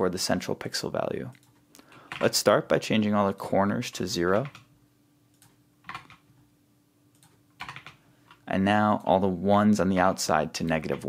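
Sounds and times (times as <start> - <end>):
faint steady hum: 0.0 - 11.0
keyboard keystrokes: 5.4 - 6.2, 7.2 - 8.0.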